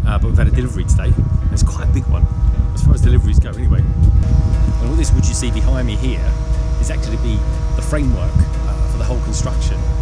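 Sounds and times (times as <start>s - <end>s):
crane engine rumbling: 0.0s - 10.0s
man talking: 0.0s - 10.0s.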